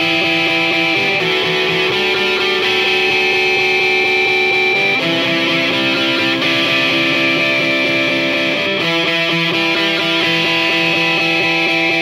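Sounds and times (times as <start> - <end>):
electric guitar riff: 0.0 - 12.0
rock band instrumental: 0.0 - 12.0.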